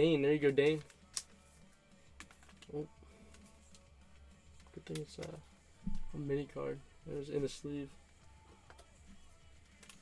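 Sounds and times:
cards clicking and tapping: 0.4s - 6.1s, 9.6s - 10.0s.

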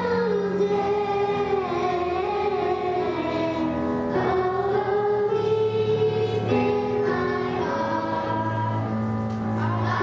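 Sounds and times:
children singing together: 0.0s - 10.0s.

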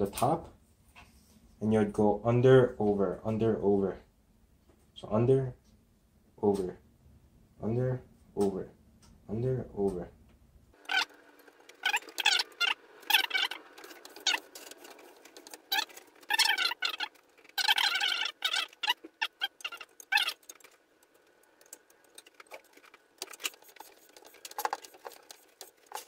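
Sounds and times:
string squeaking: 10.8s - 26.0s.

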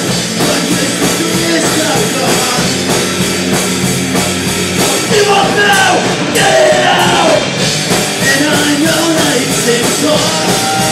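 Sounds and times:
bass guitar: 0.0s - 10.9s
distorted electric guitars: 0.0s - 10.9s
drum kit beat: 0.0s - 10.9s.

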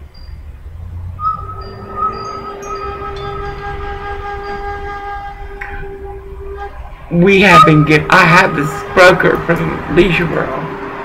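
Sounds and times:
long horn blast: 1.8s - 11.0s.

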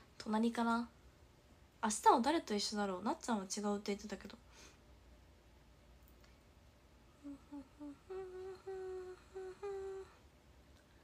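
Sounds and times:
woman humming a tune: 7.2s - 10.2s.

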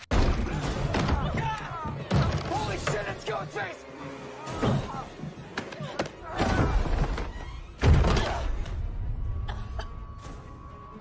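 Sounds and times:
tense film score music: 0.0s - 11.0s.

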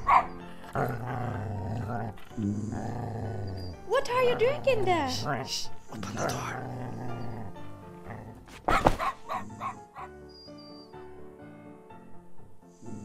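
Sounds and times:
small dog barking: 0.0s - 0.4s, 8.7s - 10.1s
background music with held notes: 0.0s - 13.0s.

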